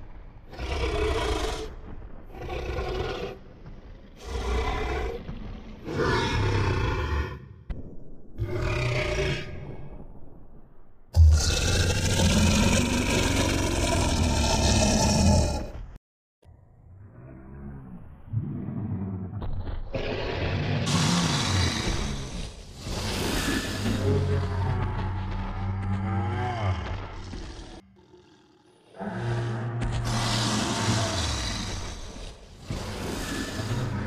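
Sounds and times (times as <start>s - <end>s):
dinosaur roars and growls: 0.0s - 7.7s, 8.4s - 10.0s, 11.2s - 15.9s, 16.8s - 34.0s.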